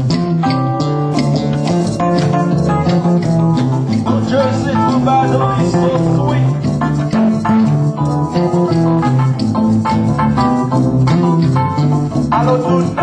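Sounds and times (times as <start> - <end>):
acoustic guitar: 0.0 - 13.0
conga drum and hand percussion: 0.0 - 13.0.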